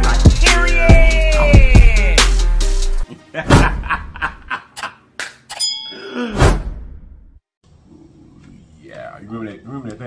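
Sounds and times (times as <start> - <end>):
bell-like ding: 5.5 - 6.1.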